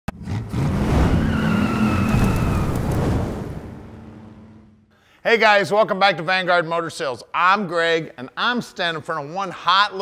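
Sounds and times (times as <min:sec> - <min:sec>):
tyre squeal: 0:01.0 - 0:02.8.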